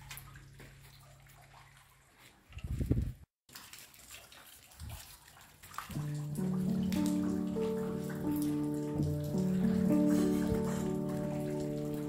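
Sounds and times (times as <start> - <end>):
slow calm piano melody: 5.9 - 12.0
soft steady rain: 5.9 - 12.0.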